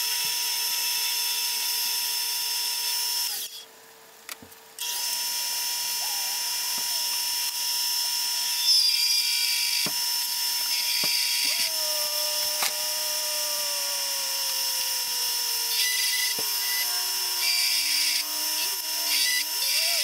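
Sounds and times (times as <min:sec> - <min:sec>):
lathe humming: 0:09.1 - 0:20.0.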